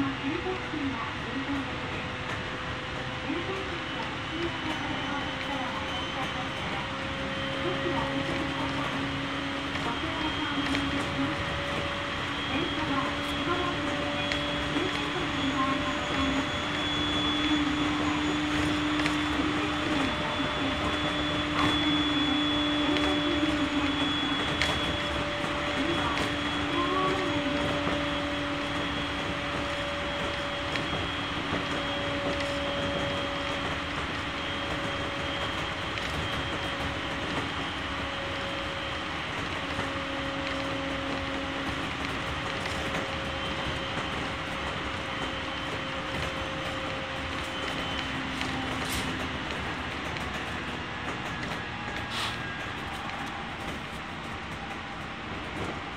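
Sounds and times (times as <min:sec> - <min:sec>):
train wheels rushing on track: 0:00.0 - 0:55.9
electric motor whine: 0:01.8 - 0:55.9.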